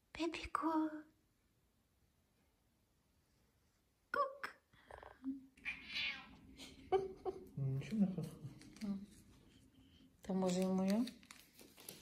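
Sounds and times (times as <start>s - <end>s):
cat meowing: 5.6s - 6.4s.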